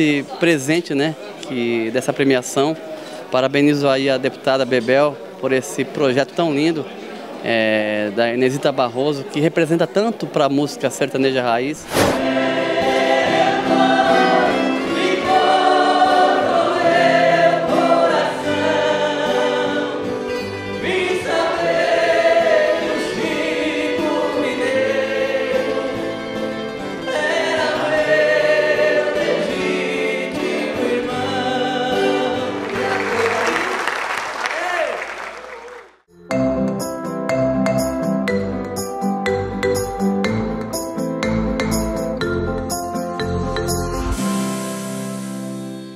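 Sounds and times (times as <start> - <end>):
choir singing together: 12.0 - 33.6
applause: 32.5 - 36.0.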